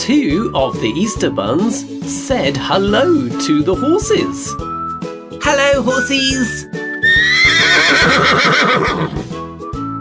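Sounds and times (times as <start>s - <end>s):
light background music: 0.0s - 10.0s
horse whinnying: 6.9s - 9.4s.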